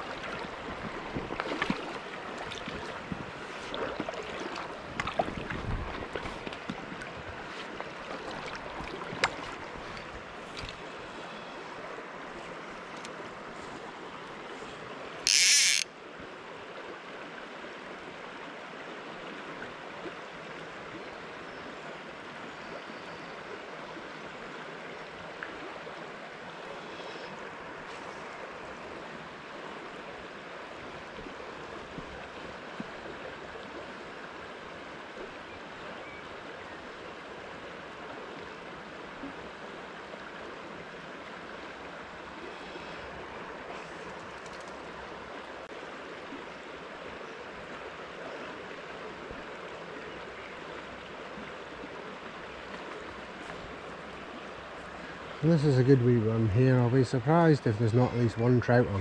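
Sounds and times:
river running over stones: 0.0 - 59.0
short high rasp: 15.3 - 15.8.

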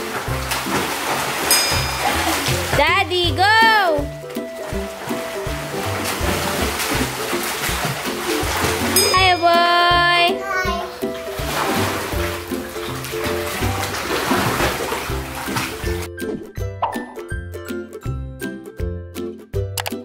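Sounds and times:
water splashing: 0.0 - 16.1
background music with bass line: 0.0 - 20.0
child's voice: 10.2 - 11.1.

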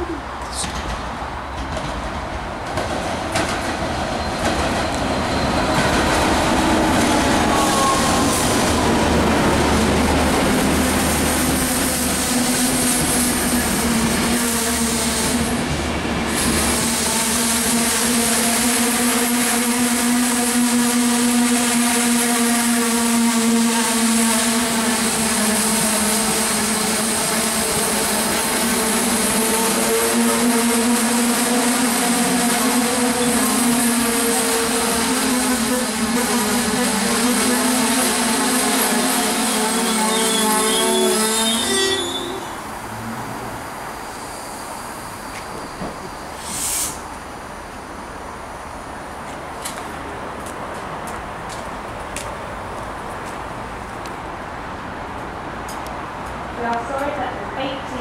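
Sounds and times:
diesel train passing: 0.0 - 58.0
wheels rumbling on rails: 0.2 - 22.8.

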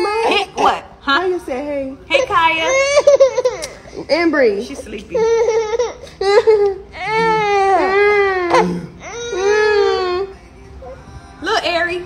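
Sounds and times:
infant crying: 5.1 - 11.0.

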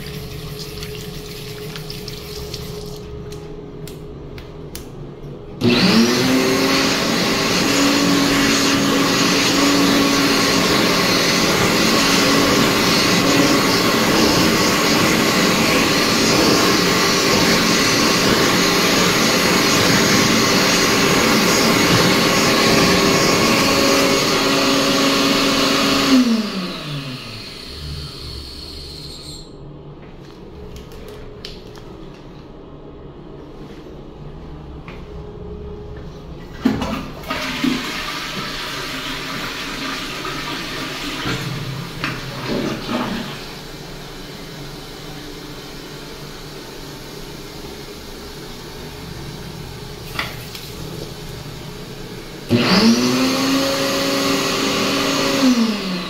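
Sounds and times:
hand dryer blowing: 0.0 - 3.4, 5.6 - 29.5, 36.6 - 56.0
tap running: 0.0 - 4.5.

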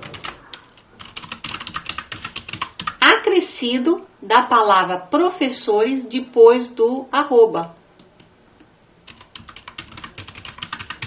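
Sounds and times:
computer keyboard typing: 0.0 - 3.0, 9.0 - 11.0.

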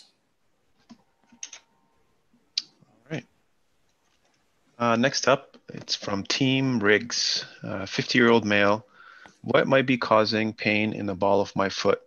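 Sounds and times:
person speaking: 4.8 - 12.0.

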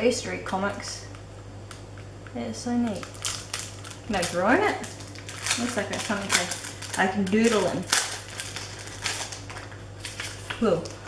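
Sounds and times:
low steady hum: 0.0 - 11.0
paper booklet rustling: 3.0 - 11.0.

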